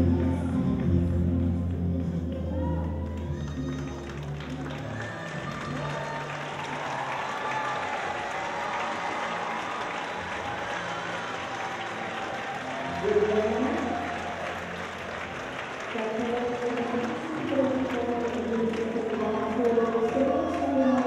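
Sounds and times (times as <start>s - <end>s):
cha cha music: 0.0s - 6.7s
audience applause: 2.6s - 21.0s.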